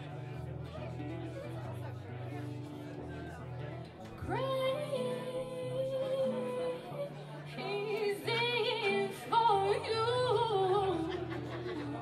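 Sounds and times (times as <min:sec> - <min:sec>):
acoustic guitar: 0:00.0 - 0:12.0
woman singing: 0:04.2 - 0:12.0.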